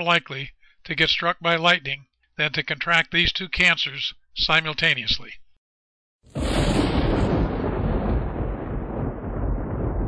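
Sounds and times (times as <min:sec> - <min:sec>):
thunder crack and rumble: 0:06.3 - 0:10.0.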